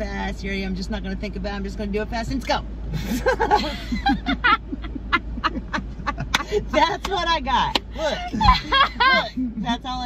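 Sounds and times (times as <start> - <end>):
people laughing hard: 3.0 - 6.6.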